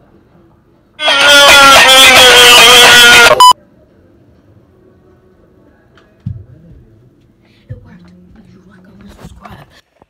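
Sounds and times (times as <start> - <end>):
loud sustained pitched tone: 1.0 - 3.6
short electronic beep: 2.4 - 3.6.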